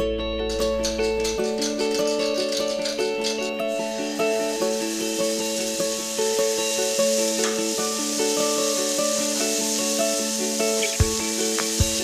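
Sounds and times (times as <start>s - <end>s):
background music with held notes: 0.0s - 12.0s
food sizzling in a frying pan: 0.9s - 12.0s.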